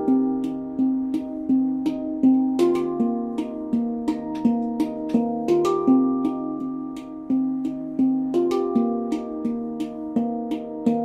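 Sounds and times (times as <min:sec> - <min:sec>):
handpan notes ringing: 0:00.0 - 0:11.0.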